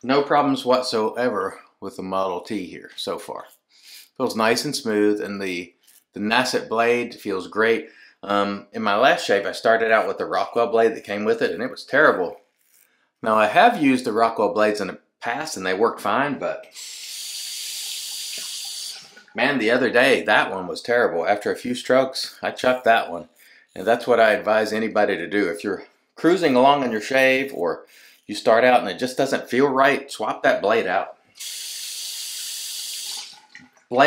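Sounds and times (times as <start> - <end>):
tap water running into sink: 17.8 - 19.8, 33.0 - 34.0
sink tap running: 32.6 - 34.0.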